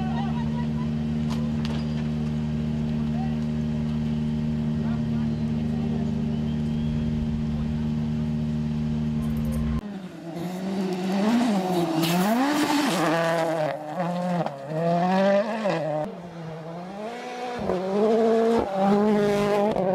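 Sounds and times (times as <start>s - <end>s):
rally car engine revving: 0.0s - 19.9s.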